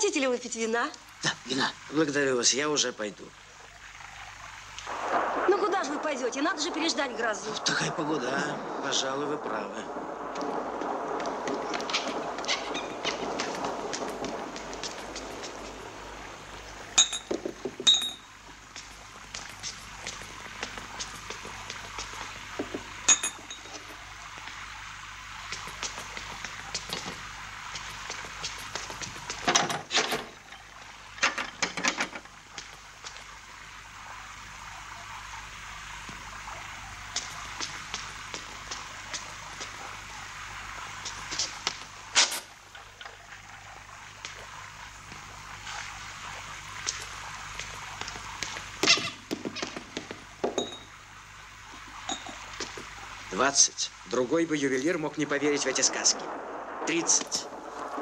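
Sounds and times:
rain hissing: 0.0s - 58.0s
crockery and glass clinking: 17.0s - 18.3s, 23.1s - 23.8s, 50.5s - 50.9s, 52.1s - 52.4s.

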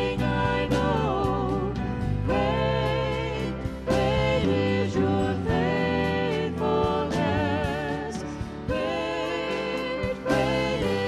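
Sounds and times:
acoustic guitar: 0.0s - 11.0s
bass guitar: 0.0s - 11.0s
drums: 0.0s - 11.0s
piano: 0.0s - 11.0s.

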